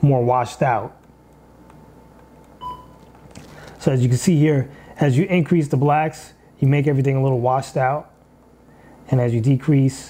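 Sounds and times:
short electronic beep: 0:02.6 - 0:03.0.

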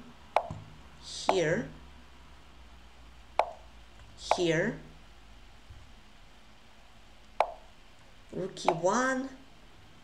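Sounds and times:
chess move clicks: 0:00.3 - 0:01.5, 0:03.4 - 0:04.6, 0:07.4 - 0:07.7, 0:08.6 - 0:08.9.

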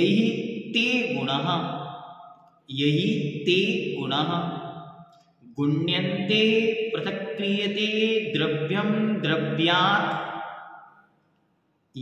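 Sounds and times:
man chanting: 0:00.0 - 0:02.1, 0:02.7 - 0:10.4.

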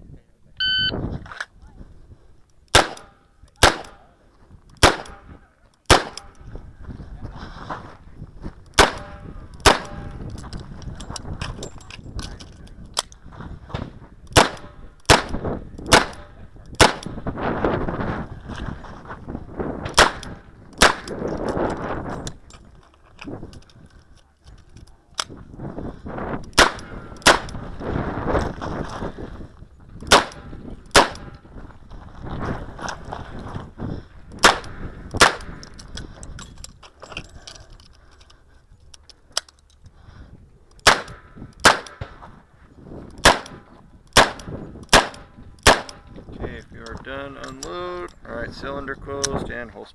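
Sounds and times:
wind buffeting microphone: 0:00.0 - 0:49.8.

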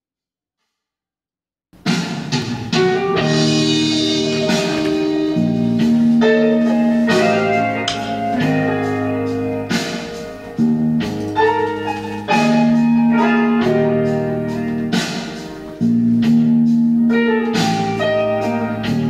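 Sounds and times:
backing track with guitar: 0:01.9 - 0:19.0.

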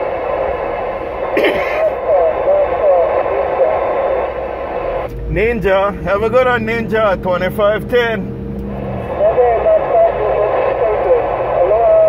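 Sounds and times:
radio static: 0:00.0 - 0:12.0
faint voice over radio: 0:01.8 - 0:04.6, 0:09.1 - 0:12.0.

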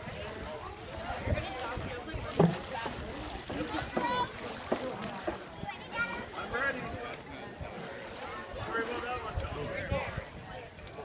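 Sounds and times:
people chatting and calling: 0:00.0 - 0:11.0.

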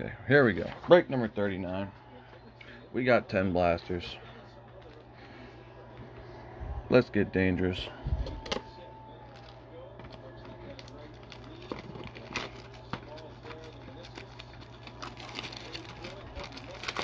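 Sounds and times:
faint voices: 0:00.0 - 0:17.0
plastic wrap crinkling: 0:09.2 - 0:17.0
scissors snipping plastic wrap: 0:09.4 - 0:17.0.

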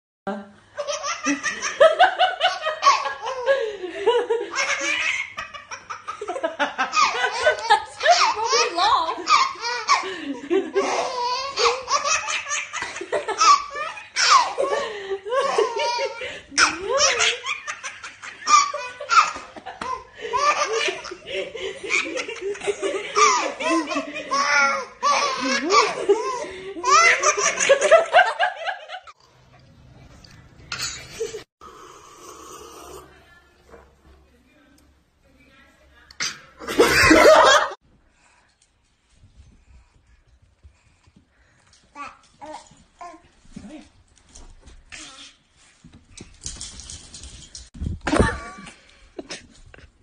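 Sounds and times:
baby laughing: 0:00.8 - 0:03.6, 0:04.4 - 0:28.3.

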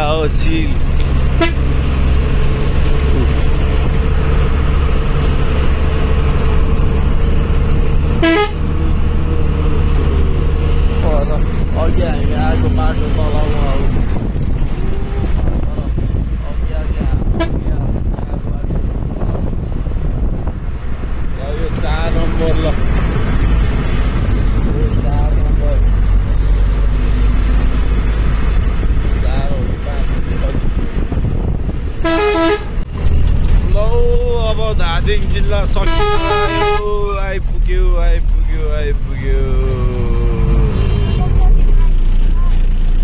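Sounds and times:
vehicle engine and road rumble: 0:00.0 - 0:43.0
vehicle horn: 0:01.3 - 0:02.0, 0:08.2 - 0:08.7, 0:17.3 - 0:17.7, 0:32.0 - 0:32.8, 0:35.8 - 0:36.9.

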